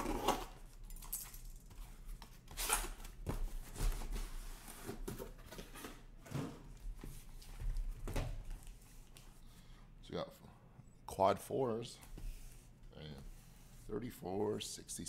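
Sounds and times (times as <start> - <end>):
cardboard boxes rustling and knocking: 3.1 - 8.5.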